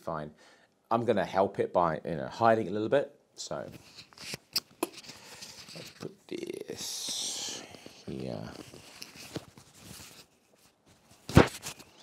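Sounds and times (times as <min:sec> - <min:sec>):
cloth rustling against microphone: 0:03.5 - 0:06.2, 0:06.9 - 0:12.0.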